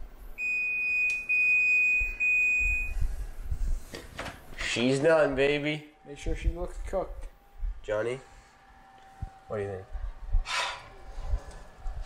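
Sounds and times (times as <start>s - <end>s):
oven timer beeping: 0.4s - 3.1s.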